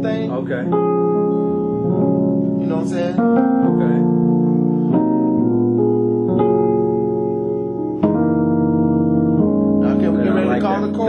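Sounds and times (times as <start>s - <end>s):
keyboard playing gospel piano chords: 0.0s - 11.0s.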